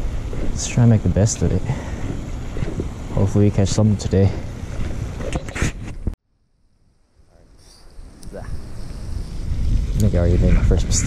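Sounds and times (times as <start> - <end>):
wind buffeting microphone: 0.0 - 6.2, 7.6 - 11.0.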